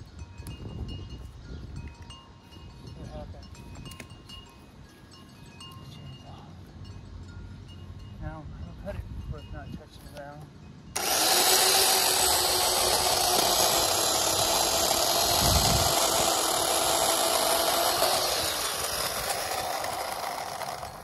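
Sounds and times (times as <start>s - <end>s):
wind rumble on microphone: 0.0s - 4.8s, 8.4s - 10.0s, 15.2s - 16.1s.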